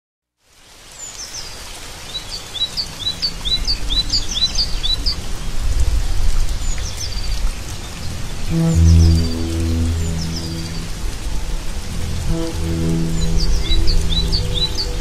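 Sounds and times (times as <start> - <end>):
rain hissing: 0.4 - 15.0
low rumble: 8.5 - 15.0
birds chirping: 12.3 - 15.0.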